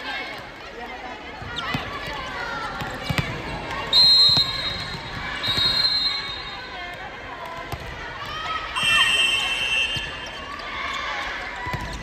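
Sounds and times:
referee's whistle: 3.9 - 6.7, 8.8 - 10.4.

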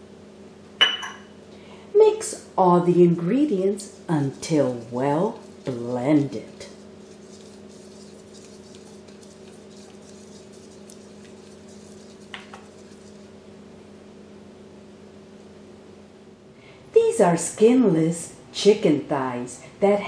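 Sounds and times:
steady low hum: 0.0 - 20.0
whisk beating liquid in bowl: 3.1 - 13.4.

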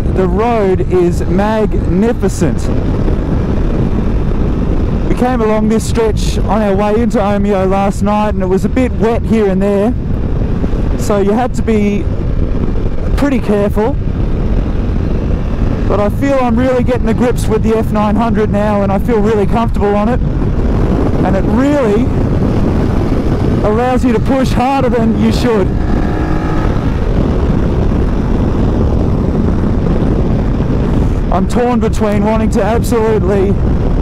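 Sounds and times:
motorcycle engine rumble: 0.0 - 34.0
road noise: 0.0 - 34.0
wind rush: 0.0 - 34.0.

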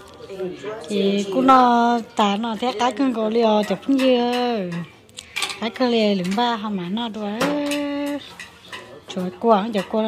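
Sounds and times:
chopsticks clinking against bowls: 2.4 - 6.6, 7.2 - 10.0.

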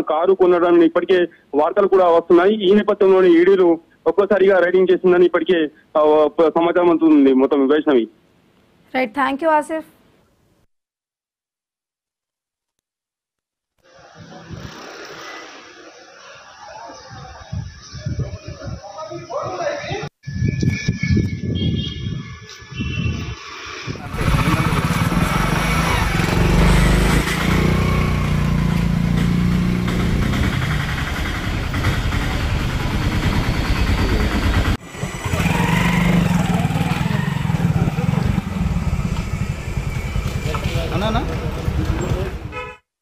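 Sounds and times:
motor vehicle engine running: 24.0 - 42.5.

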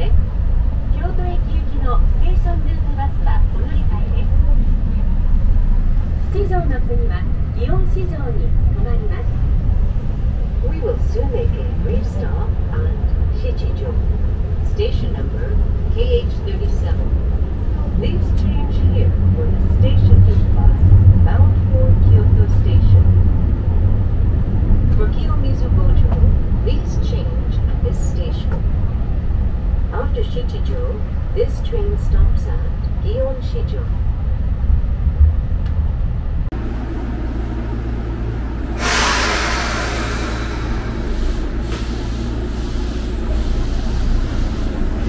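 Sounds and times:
passengers talking: 0.0 - 45.0
train car rumble: 0.0 - 45.0.

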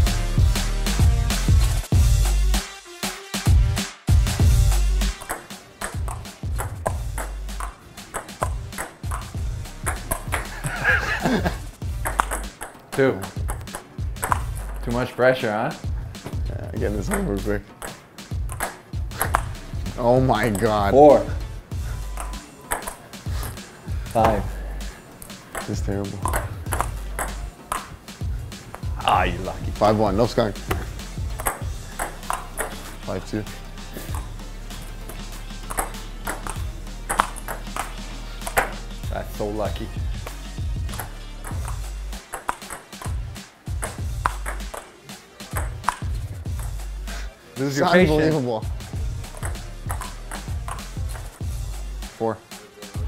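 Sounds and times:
background music with bass line: 0.0 - 12.6, 13.2 - 15.1, 15.7 - 22.5, 23.2 - 53.0
table tennis ball clicking: 5.2 - 10.5, 12.0 - 14.8, 17.1 - 19.5, 22.1 - 23.6, 25.2 - 28.1, 30.7 - 32.8, 34.1 - 34.3, 35.1 - 38.8, 40.9 - 43.2, 43.8 - 44.9, 45.5 - 46.8, 49.3 - 51.4.

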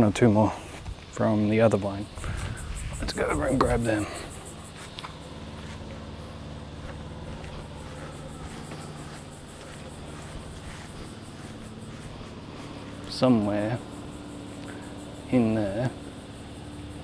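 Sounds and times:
low motor hum: 0.0 - 17.0.

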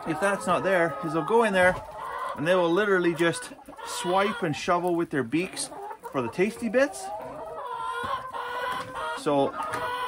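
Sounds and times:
hens clucking: 0.0 - 10.0.

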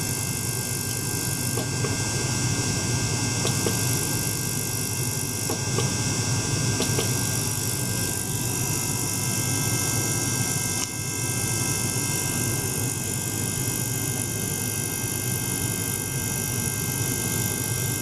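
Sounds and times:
thin steady whining tones: 0.0 - 18.0
ultrasonic cleaner buzzing hiss: 0.0 - 18.0.

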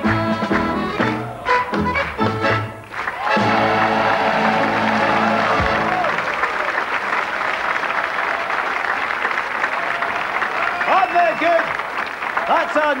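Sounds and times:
audience applause: 1.0 - 13.0.

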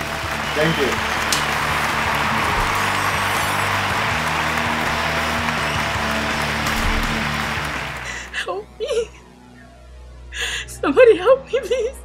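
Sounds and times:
applause: 0.0 - 8.4
background music with bass line: 0.0 - 8.5
hand slap high five: 0.9 - 3.8.

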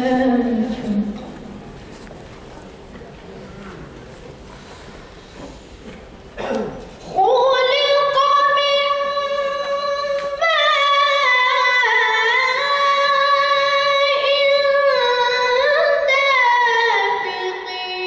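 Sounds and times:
child reciting melodically: 0.0 - 1.2, 7.1 - 18.0
low background noise: 0.0 - 18.0.

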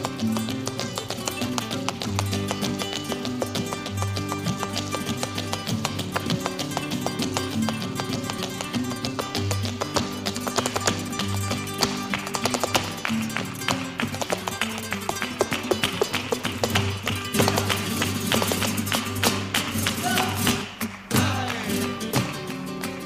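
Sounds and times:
heeled shoes tapping floor: 0.0 - 19.9
flamenco guitar: 0.0 - 23.0
hand clapping: 0.0 - 23.0.

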